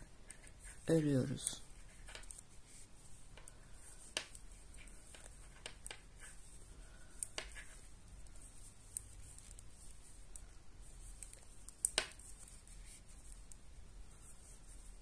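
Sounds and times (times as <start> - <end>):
knitting needles clicking: 0.0 - 13.7
soft yarn handling: 0.0 - 15.0.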